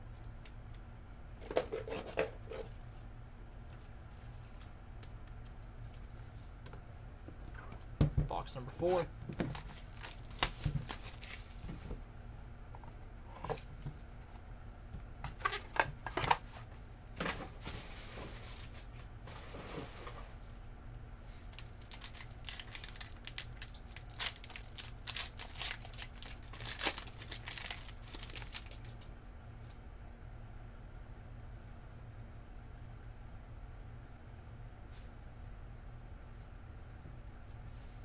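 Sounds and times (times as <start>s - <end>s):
wrapper crinkling and tearing: 9.4s - 11.7s, 21.5s - 29.1s.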